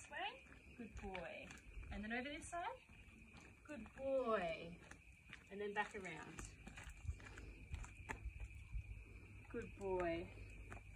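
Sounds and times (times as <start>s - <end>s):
footsteps of person and dog: 0.0s - 10.9s.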